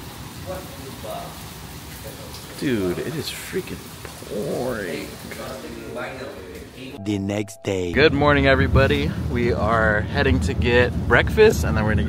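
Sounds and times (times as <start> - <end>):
heavy rain on pavement: 0.0 - 6.6.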